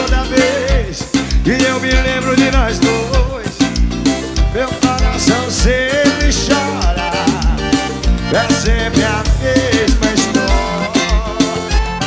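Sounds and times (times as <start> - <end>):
person singing: 0.0 - 3.8, 4.5 - 12.0
live band music: 0.0 - 12.0.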